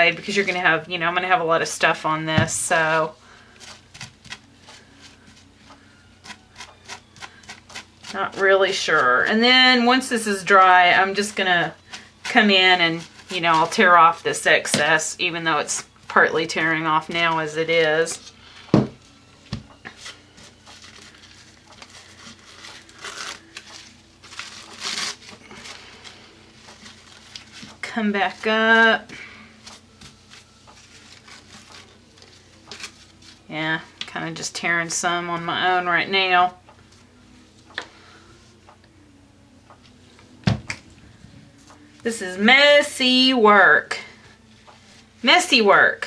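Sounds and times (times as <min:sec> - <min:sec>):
tissue paper rustling and crinkling: 0:02.9 - 0:08.5, 0:19.8 - 0:33.5.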